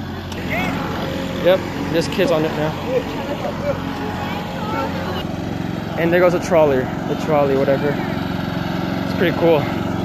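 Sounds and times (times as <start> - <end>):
vehicle engine running: 0.0 - 10.0
faint voices: 0.4 - 8.3.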